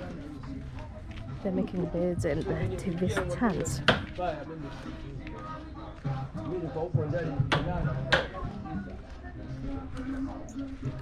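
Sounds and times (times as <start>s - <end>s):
background music: 0.0s - 11.0s
indistinct voices: 0.0s - 11.0s.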